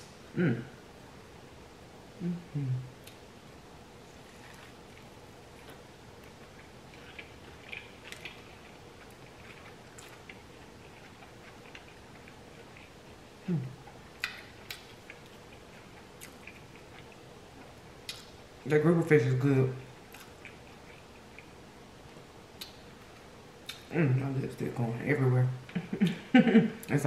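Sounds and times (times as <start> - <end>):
person humming mm: 0.3 - 0.8, 2.2 - 3.0, 13.4 - 13.8
close-miked chewing: 4.0 - 18.3, 19.7 - 21.6.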